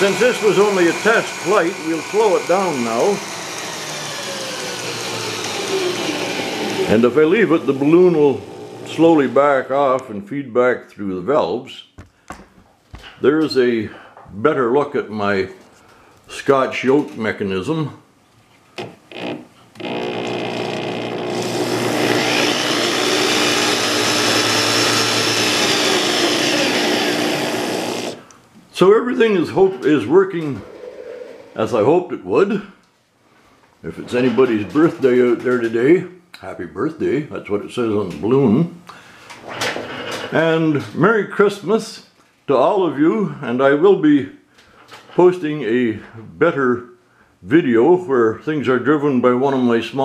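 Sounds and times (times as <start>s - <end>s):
electric drill driving model compressor: 0.0s - 9.4s, 18.8s - 28.2s.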